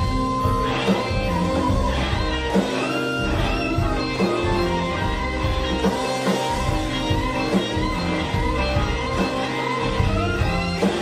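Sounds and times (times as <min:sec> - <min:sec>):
electric guitar lead lines: 0:00.0 - 0:11.0
steady drums: 0:00.0 - 0:11.0.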